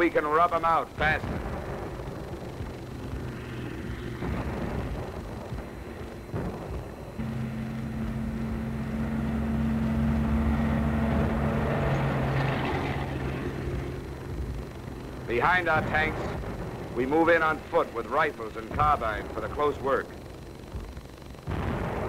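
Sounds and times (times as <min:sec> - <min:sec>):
tank engine running: 0:00.0 - 0:22.0.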